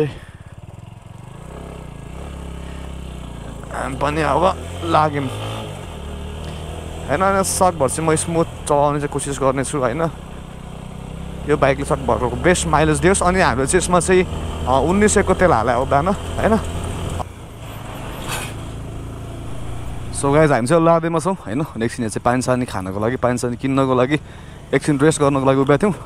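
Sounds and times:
motorcycle engine running: 0.0s - 26.0s
road and wind noise: 0.0s - 26.0s
person speaking: 3.7s - 5.4s, 19.6s - 25.4s.

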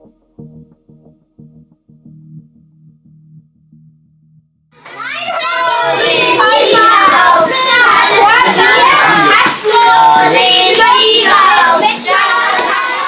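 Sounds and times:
children chanting and shouting: 4.8s - 13.0s.

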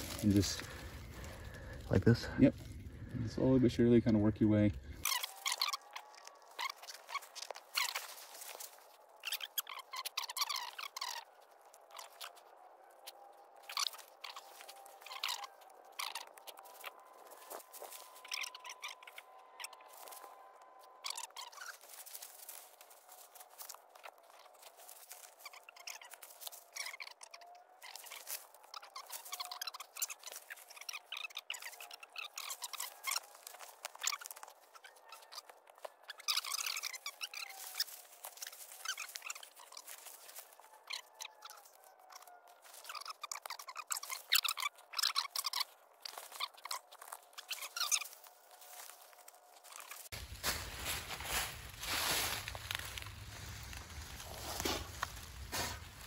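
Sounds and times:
dry leaves crackling and rustling: 0.0s - 3.2s, 4.8s - 56.0s.

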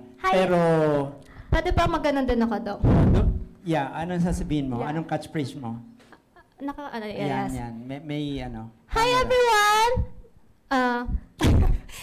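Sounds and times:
thumps on a microphone: 2.8s - 3.5s, 11.1s - 11.9s.

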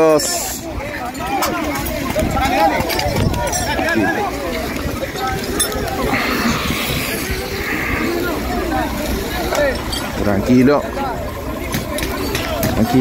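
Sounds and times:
crowd talking and calling out: 0.0s - 13.0s
rough hiss-like noise: 5.7s - 9.6s.

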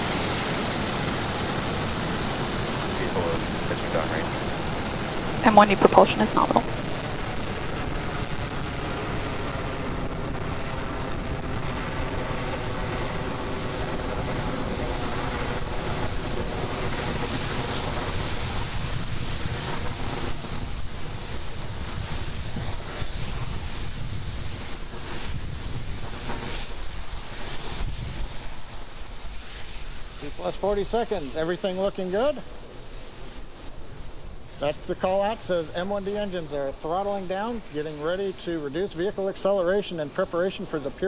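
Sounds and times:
rocket engines roaring: 0.0s - 41.0s.

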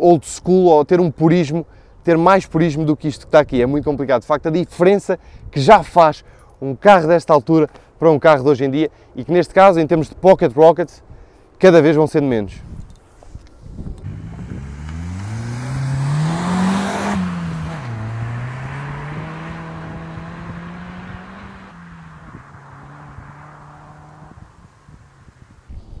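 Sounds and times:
car engine accelerating: 14.0s - 25.7s.

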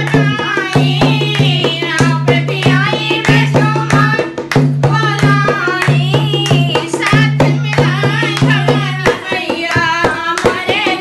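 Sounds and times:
hand claps: 0.0s - 11.0s
women singing folk song: 0.0s - 11.0s.

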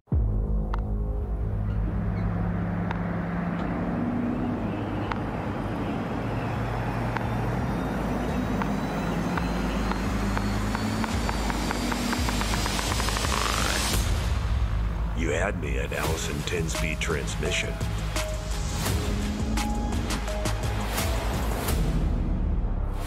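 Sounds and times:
high whine: 0.1s - 21.9s
pickup truck engine and road hum: 0.8s - 23.0s
quickening ticks: 8.4s - 14.0s.

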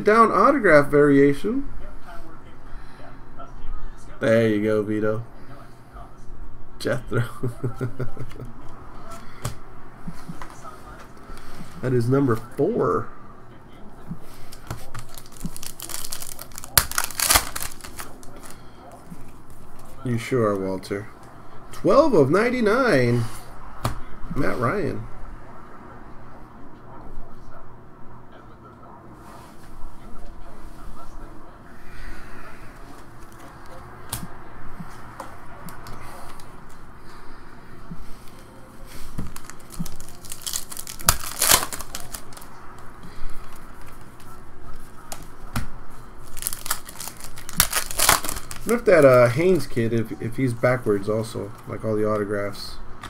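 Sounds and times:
plastic card sleeve crinkling: 14.5s - 18.6s, 39.2s - 44.3s, 46.2s - 49.7s
foil wrapper ripping: 14.9s - 18.6s, 39.2s - 42.5s, 46.2s - 49.4s.

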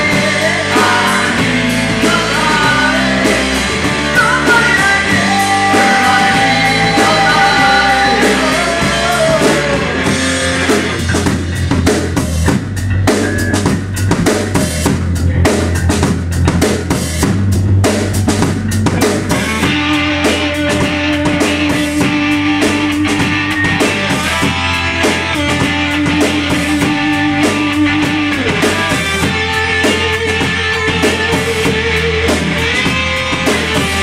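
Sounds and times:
drum kit: 0.0s - 34.0s
electric bass: 0.0s - 34.0s
held electric guitar notes: 18.2s - 34.0s.

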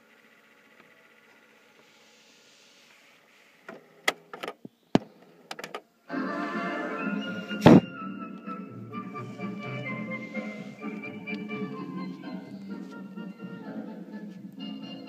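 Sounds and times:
music from tape speaker: 6.1s - 15.0s.

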